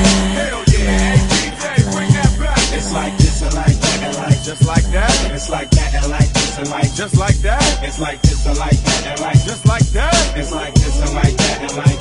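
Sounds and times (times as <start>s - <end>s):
deep repeating bass line: 0.0s - 12.0s
punchy drums: 0.0s - 12.0s
rapping over a beat: 0.0s - 12.0s.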